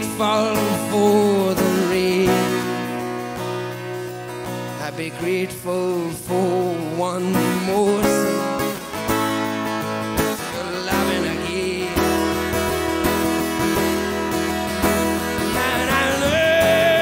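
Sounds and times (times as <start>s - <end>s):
acoustic guitar strumming: 0.0s - 17.0s.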